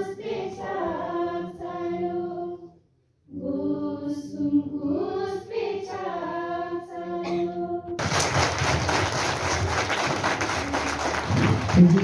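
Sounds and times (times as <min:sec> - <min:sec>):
crowd applauding: 0:08.0 - 0:12.0.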